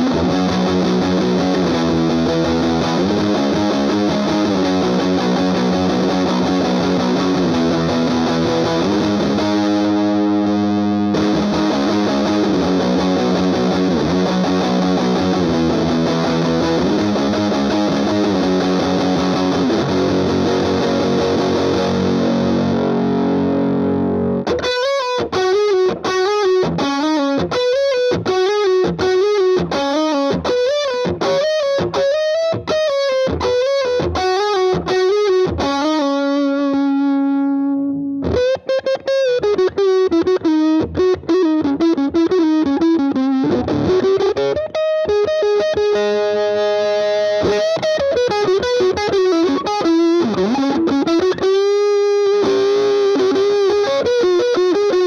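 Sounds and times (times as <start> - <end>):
distorted electric guitar solo: 0.0 - 55.0.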